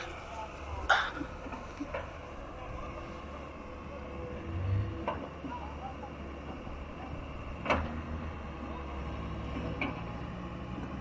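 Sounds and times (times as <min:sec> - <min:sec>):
distant excavator engine running: 0:00.0 - 0:11.0.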